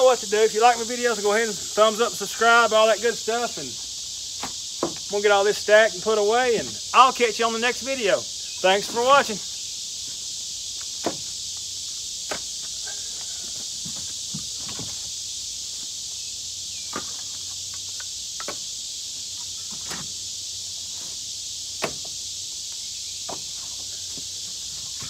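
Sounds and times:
high insect drone: 0.0 - 25.0
firewood clunking onto woodpile: 4.4 - 5.1, 11.0 - 11.3, 12.3 - 15.1, 16.9 - 18.7, 21.8 - 22.2, 23.2 - 25.0.

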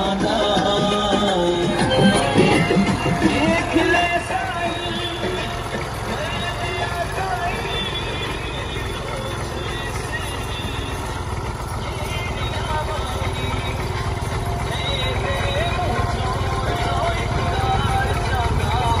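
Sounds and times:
song with wavering vocal melody: 0.0 - 19.0
tractor engine running: 0.0 - 19.0.

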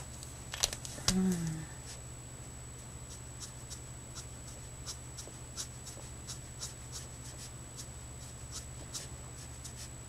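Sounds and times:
marker scratching over paper: 3.1 - 9.9.

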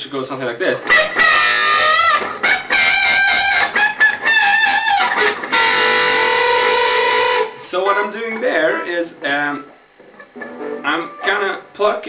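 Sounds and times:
electric guitar bent notes: 0.8 - 11.6.

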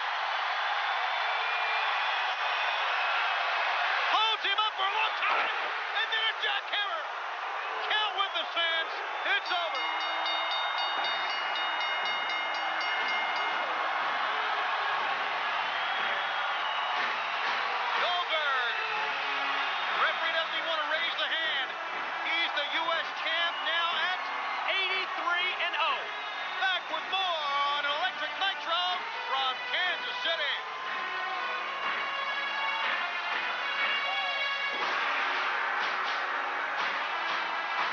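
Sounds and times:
arena crowd cheering: 0.0 - 37.9.

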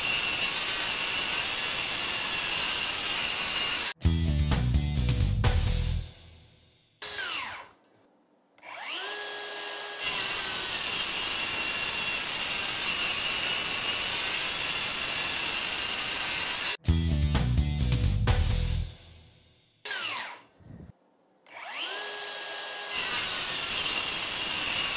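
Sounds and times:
circular saw whining: 0.0 - 4.0, 7.0 - 7.8, 8.6 - 16.8, 19.8 - 20.9, 21.5 - 24.9
saw blade cutting plywood: 0.0 - 4.0, 7.0 - 8.0, 8.6 - 16.8, 19.8 - 20.8, 21.5 - 24.9
music: 4.0 - 7.0, 16.8 - 19.8.

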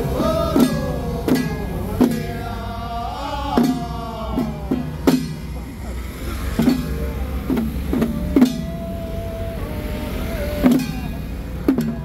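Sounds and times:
person chanting long note: 7.9 - 11.4.

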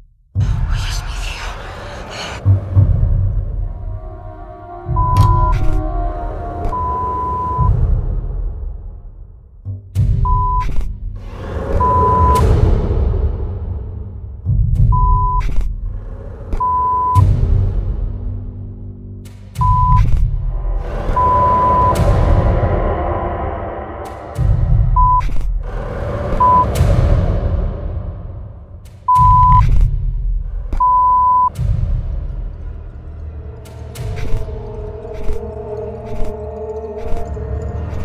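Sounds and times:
deep low rumble: 0.0 - 38.0
music: 0.0 - 38.0
test-tone beep: 5.0 - 5.6, 16.6 - 17.2, 19.6 - 20.0, 21.2 - 22.0, 25.0 - 25.3, 29.1 - 29.6, 30.8 - 31.5.

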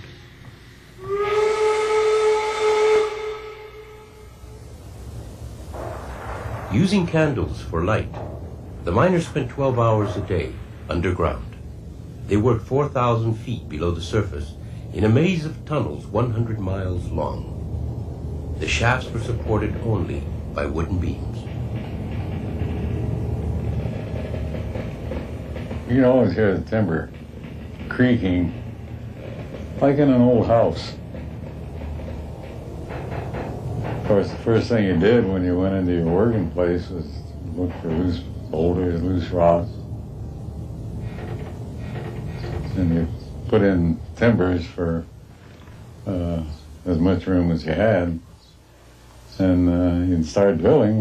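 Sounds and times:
hiss of steam: 0.0 - 8.1
steam whistle blast: 1.0 - 4.6
low steady rumble: 3.5 - 51.0.

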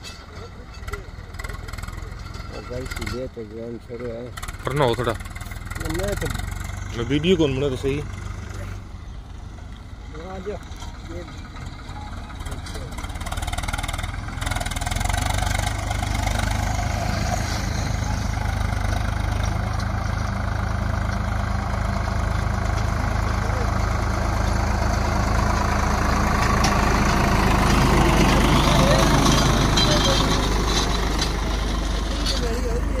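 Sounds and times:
tractor diesel engine working hard: 0.0 - 33.0.

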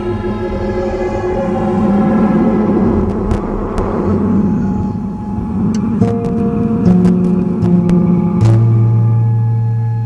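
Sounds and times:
held drone tones: 0.0 - 10.0
loud rumbling noise: 0.0 - 10.0.

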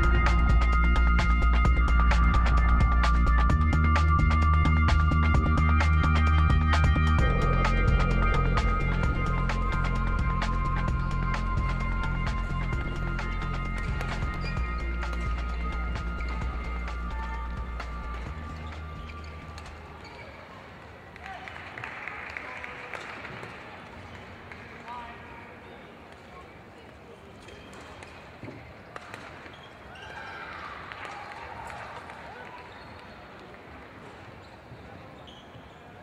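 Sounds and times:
music with deep bass: 0.0 - 19.4
faint voices in sports hall: 0.0 - 36.0
faint high squeak: 18.5 - 20.6, 34.4 - 36.0.

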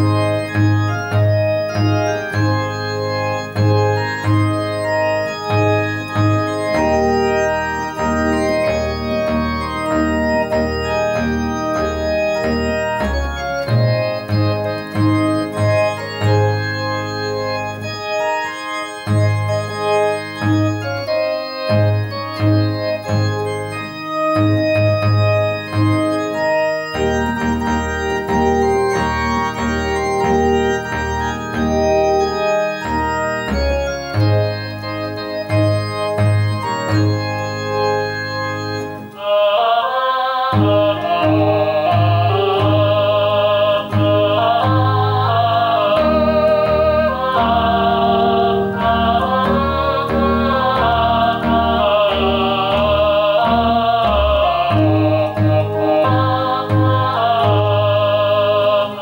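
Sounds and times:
electronic organ playing a hymn: 0.0 - 59.0.

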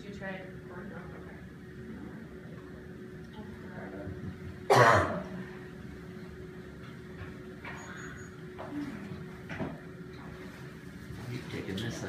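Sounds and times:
faint steady hum: 0.0 - 12.0
person coughing: 4.7 - 5.4.

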